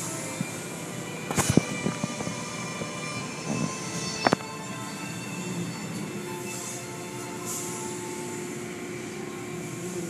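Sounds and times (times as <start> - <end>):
car wash machinery hum: 0.0 - 10.0.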